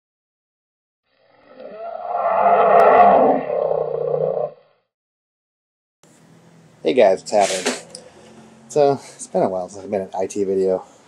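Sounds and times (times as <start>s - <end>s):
loud roar: 1.2s - 4.6s.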